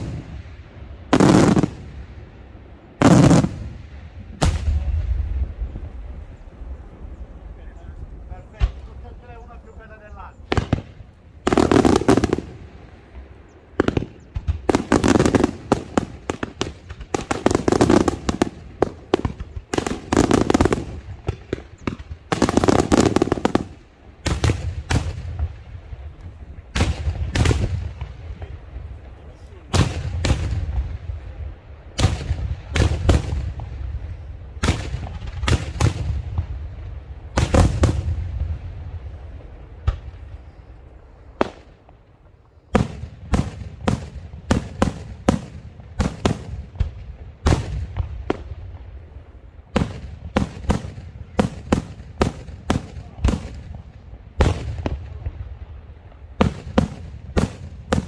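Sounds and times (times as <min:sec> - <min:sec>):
fireworks bursting: 0:00.0 - 0:58.0.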